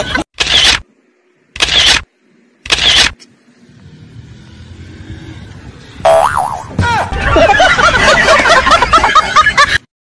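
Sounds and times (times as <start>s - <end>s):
laughter: 0.0s - 0.3s, 7.1s - 9.9s
cartoon boing with wobbling pitch: 6.1s - 6.7s.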